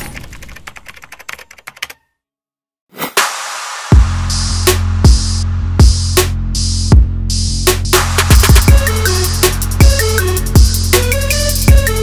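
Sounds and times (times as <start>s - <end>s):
keyboard typing clicks: 0.1s - 2.1s.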